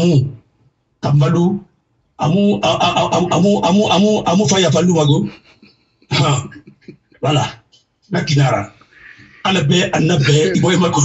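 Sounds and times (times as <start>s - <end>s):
man's voice: 0.0s - 0.4s, 1.0s - 1.6s, 2.2s - 5.5s, 6.1s - 11.0s.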